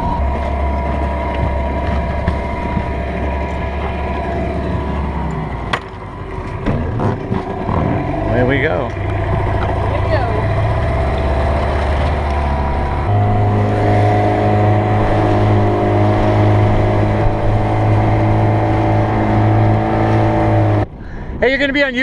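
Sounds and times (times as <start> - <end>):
outboard motor running: 0.0 - 21.3.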